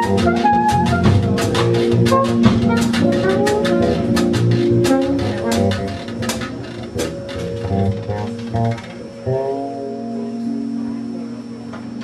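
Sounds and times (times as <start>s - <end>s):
drum kit and cymbal hits: 0.0s - 8.9s
electric bass lines: 0.0s - 12.0s.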